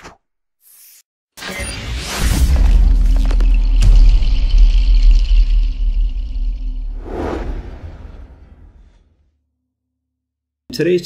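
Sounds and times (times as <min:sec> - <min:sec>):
short whoosh: 0:06.9 - 0:09.0.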